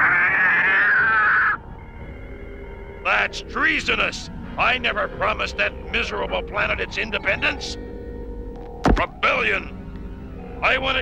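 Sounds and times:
cartoon cat yowl: 0.0s - 1.6s.

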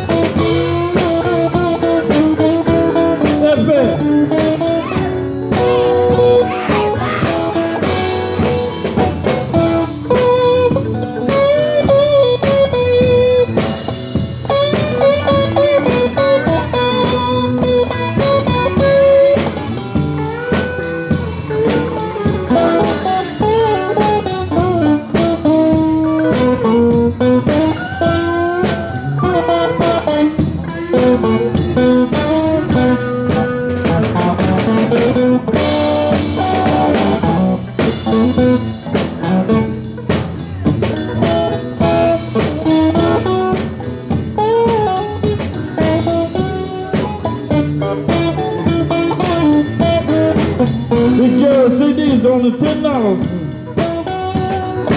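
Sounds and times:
bass guitar: 0.0s - 54.9s
drum kit: 0.0s - 54.9s
electric lead guitar bending notes: 0.0s - 54.9s.

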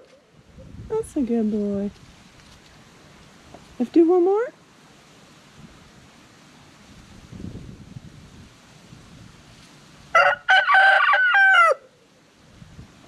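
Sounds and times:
rooster crowing: 10.1s - 12.0s.

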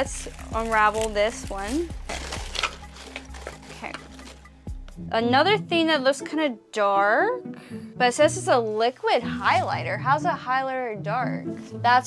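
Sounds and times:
paper wrap rustling and crinkling: 0.0s - 4.5s.

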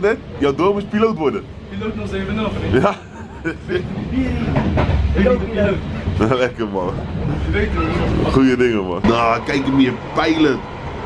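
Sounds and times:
train rumbling inside carriage: 0.0s - 11.0s
men laughing: 2.6s - 4.6s.

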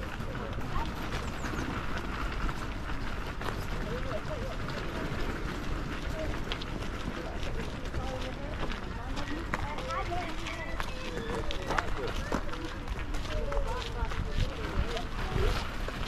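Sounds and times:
footsteps crunching on gravel: 0.0s - 16.0s
indistinct voices talking: 0.0s - 16.0s.

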